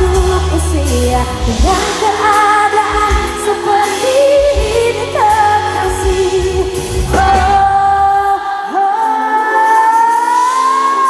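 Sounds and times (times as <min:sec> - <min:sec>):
live pop band: 0:00.0 - 0:11.0.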